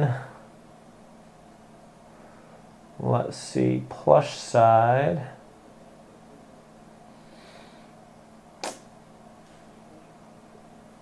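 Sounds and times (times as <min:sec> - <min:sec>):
faint steady hum: 0:00.0 - 0:11.0
sharp click: 0:08.6 - 0:08.9.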